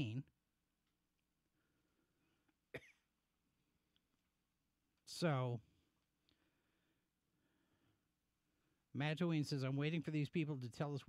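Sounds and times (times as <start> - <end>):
man coughing: 2.7 - 3.1.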